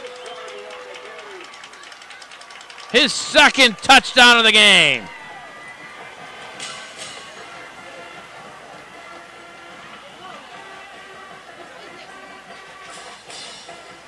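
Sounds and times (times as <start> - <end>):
murmur of crowd voices: 0.0 - 14.0.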